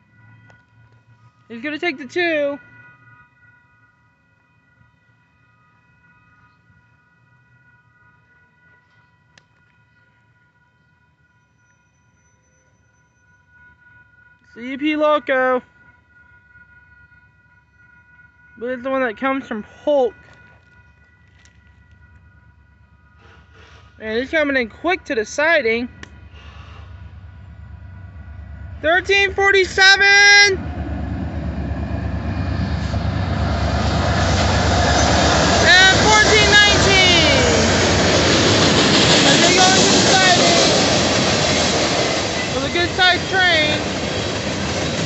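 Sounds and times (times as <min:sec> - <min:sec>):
railroad crossing bell ringing: 0:00.0 - 0:23.2, 0:23.9 - 0:45.0
diesel locomotives rumbling: 0:17.8 - 0:45.0.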